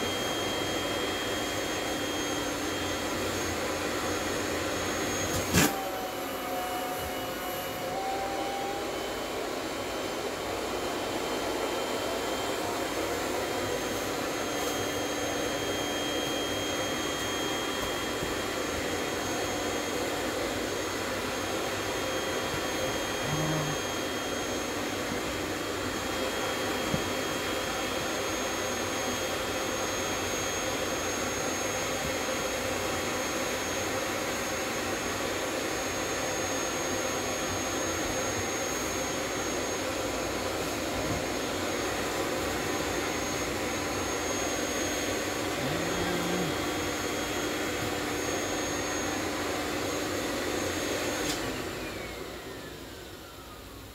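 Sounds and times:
vacuum cleaner running: 0.0s - 53.9s.

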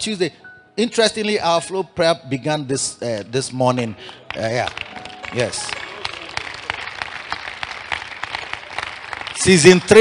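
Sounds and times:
hand clapping: 4.0s - 10.0s.

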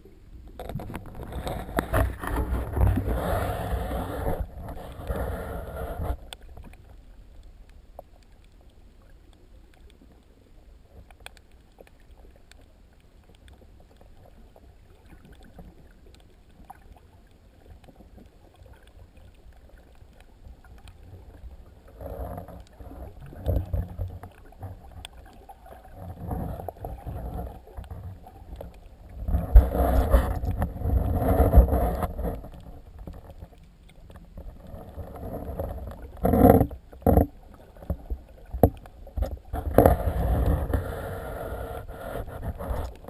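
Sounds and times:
water rushing and sloshing: 0.0s - 43.0s.

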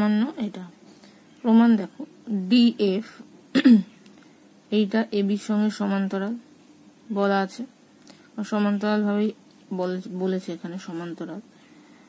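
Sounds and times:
woman speaking: 0.0s - 0.8s, 1.4s - 3.3s, 4.7s - 6.5s, 7.1s - 7.8s, 8.4s - 11.5s
woman clearing her throat: 3.5s - 3.9s.

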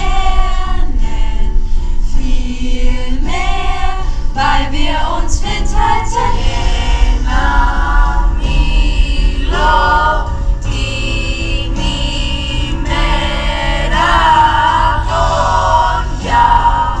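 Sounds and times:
youth choir singing: 0.0s - 17.0s.

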